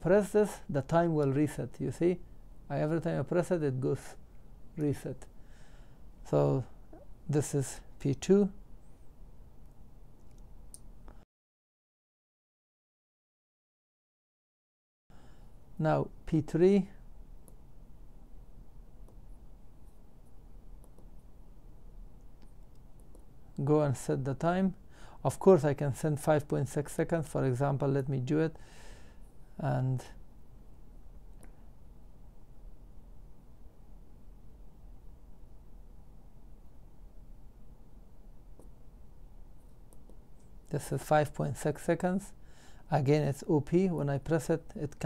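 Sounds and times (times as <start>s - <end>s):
room hum: 0.0s - 11.2s, 15.1s - 45.0s.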